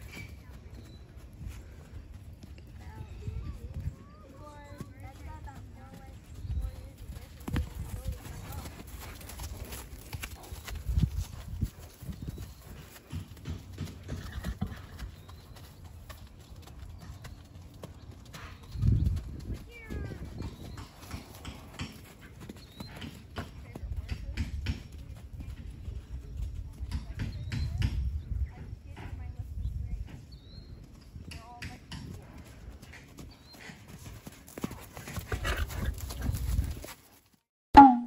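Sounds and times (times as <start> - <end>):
hoofbeats on grass and dirt: 0.0 - 37.5.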